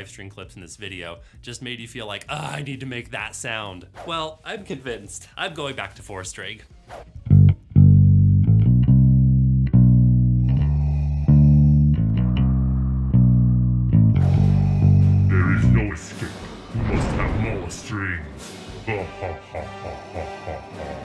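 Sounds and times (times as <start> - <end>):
electric bass guitar notes: 7.2 - 16.4
person speaking: 15.0 - 18.3.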